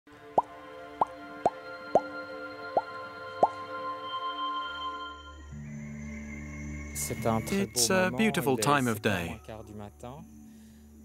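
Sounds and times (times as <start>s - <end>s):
sustained musical chord: 0.1s - 10.6s.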